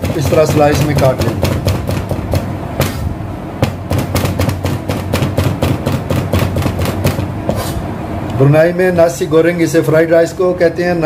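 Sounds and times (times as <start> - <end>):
cleaver chopping on cutting board: 0.0 - 3.0, 3.6 - 7.7
steady low hum: 0.0 - 11.0.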